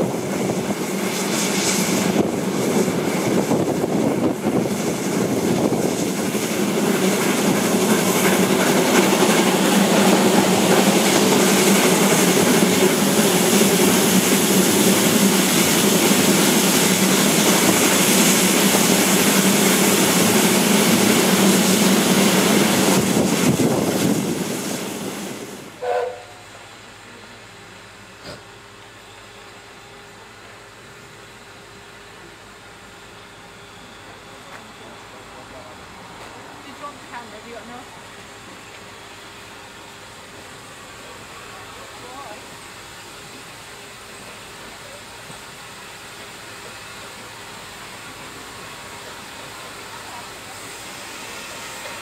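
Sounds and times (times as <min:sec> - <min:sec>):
train coaches rumbling on track: 0:00.0 - 0:52.0
wind noise on microphone: 0:23.0 - 0:24.5
train toot: 0:25.7 - 0:26.8.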